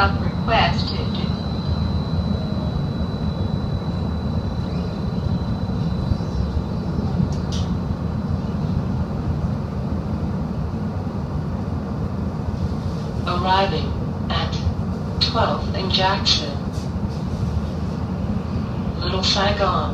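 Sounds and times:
streetcar rumbling on rails: 0:00.0 - 0:19.9.

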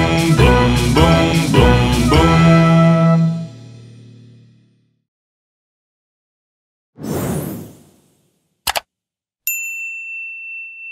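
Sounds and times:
whoosh: 0:07.0 - 0:08.4.

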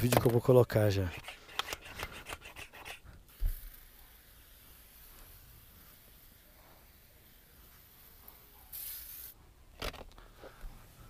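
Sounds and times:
faint hiss: 0:03.3 - 0:09.6.

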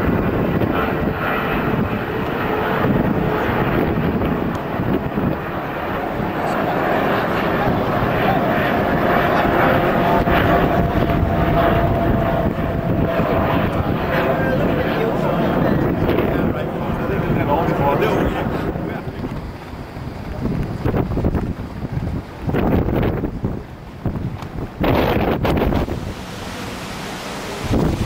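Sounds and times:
jet airliner engines roaring: 0:00.0 - 0:28.0
faint steady whine: 0:25.6 - 0:28.0.

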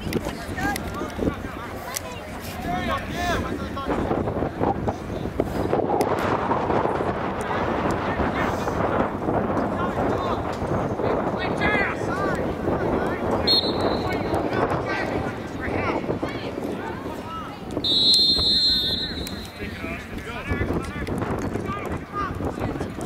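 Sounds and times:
voices calling and shouting: 0:00.0 - 0:23.0
wind buffeting microphone: 0:00.0 - 0:23.0
high whistle blast: 0:13.4 - 0:14.2, 0:17.8 - 0:19.6.

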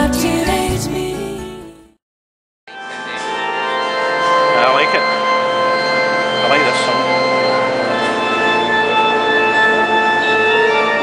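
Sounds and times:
organ sustained chords: 0:02.7 - 0:11.0.

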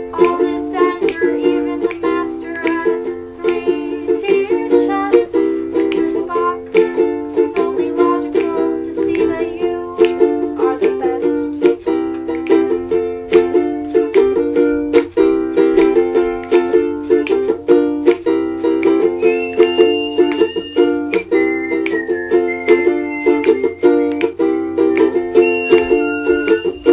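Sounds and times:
ukulele strumming chords: 0:00.0 - 0:26.9.

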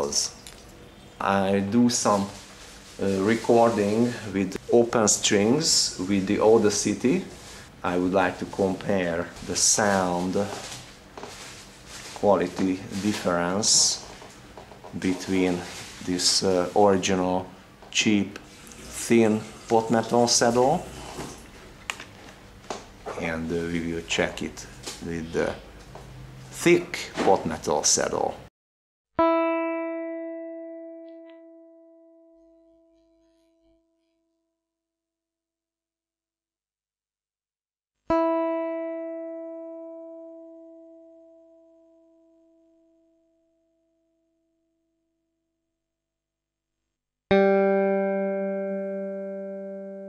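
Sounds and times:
low electrical hum: 0:00.0 - 0:28.5
electric guitar string plucked: 0:29.2 - 0:33.2, 0:38.1 - 0:43.0, 0:47.3 - 0:50.0.

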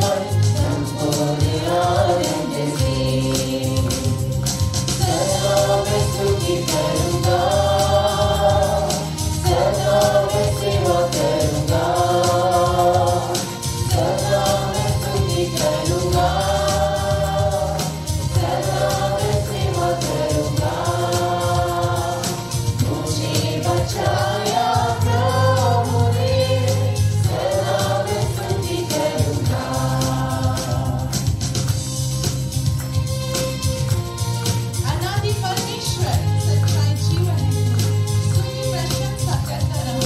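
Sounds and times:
group singing worship song: 0:00.0 - 0:35.1
instrumental backing with bass and beat: 0:00.0 - 0:40.0.

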